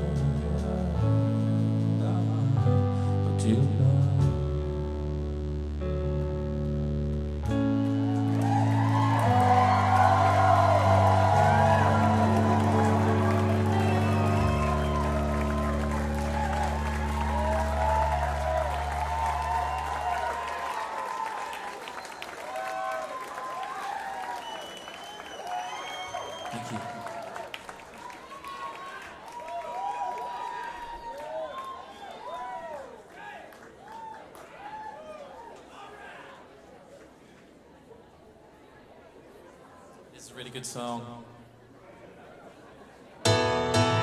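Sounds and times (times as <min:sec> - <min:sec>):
band held chords: 0:00.0 - 0:20.8, 0:43.2 - 0:44.0
audience applauding and cheering: 0:07.5 - 0:36.2
whistles from audience: 0:21.8 - 0:22.7, 0:24.2 - 0:27.1, 0:31.0 - 0:32.4.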